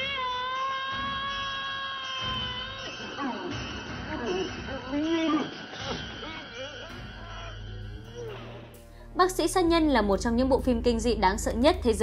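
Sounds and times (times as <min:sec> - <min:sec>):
long high-pitched scream: 0:00.0 - 0:03.8.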